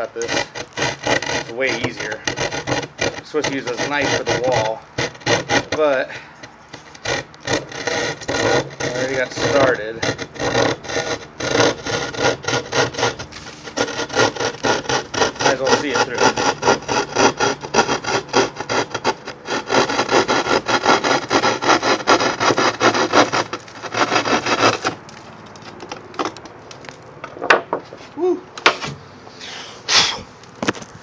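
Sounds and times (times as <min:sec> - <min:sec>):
knife sawing through drywall: 0:00.0 - 0:25.8.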